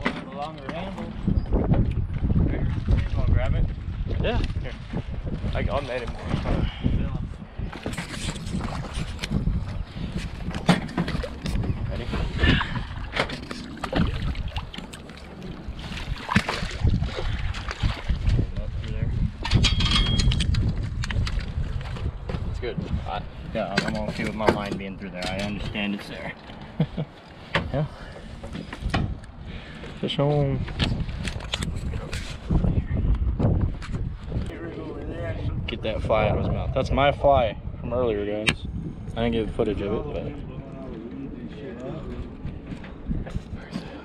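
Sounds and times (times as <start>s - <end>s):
wind rumble on microphone: 0.0s - 44.0s
water splashing: 10.8s - 19.0s.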